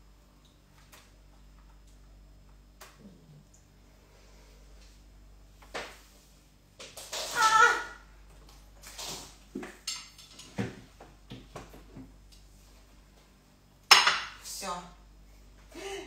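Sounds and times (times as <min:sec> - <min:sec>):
dishes clattering and clinking: 0:09.7 - 0:10.8, 0:13.9 - 0:14.4.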